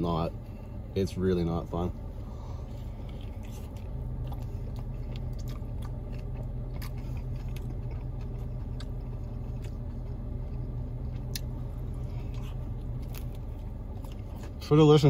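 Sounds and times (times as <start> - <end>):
low hum: 0.0 - 15.0
biting and chewing: 2.2 - 15.0.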